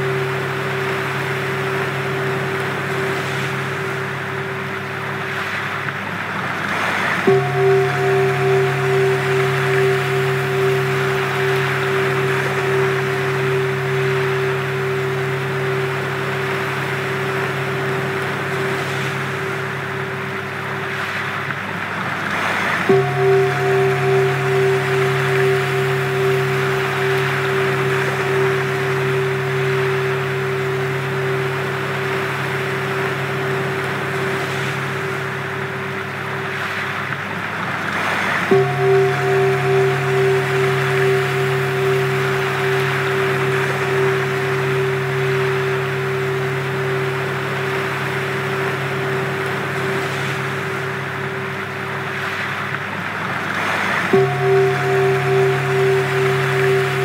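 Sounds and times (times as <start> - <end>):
low sustained drone tones: 0.0 - 57.0
wash of noise: 0.0 - 57.0
wavering ringing tone: 0.0 - 57.0.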